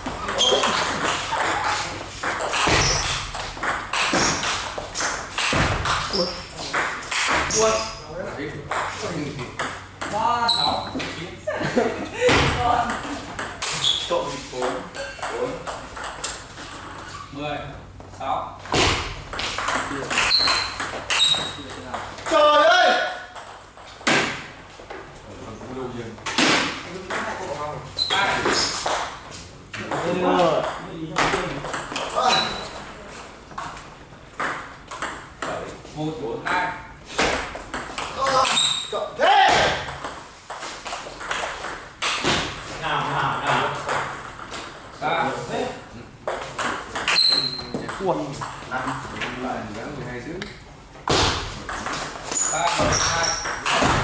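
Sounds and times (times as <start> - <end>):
people talking: 29.8 - 33.2, 52.5 - 54.0.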